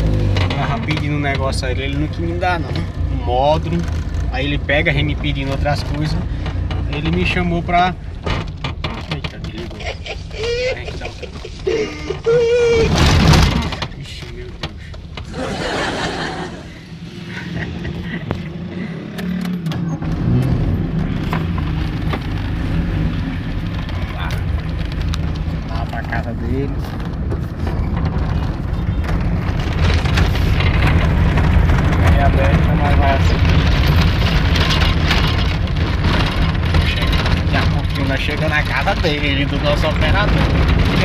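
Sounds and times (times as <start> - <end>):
car engine: 0.0 - 41.0
road rumble: 0.0 - 41.0.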